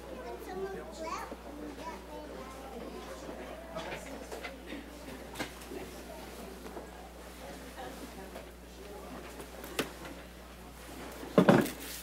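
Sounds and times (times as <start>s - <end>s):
chatter of people talking: 0.0s - 11.5s
young child's voice: 0.1s - 3.2s.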